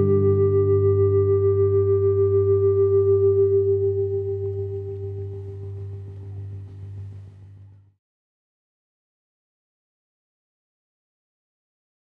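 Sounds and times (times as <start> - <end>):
electric guitar chord ringing: 0.0 - 6.8.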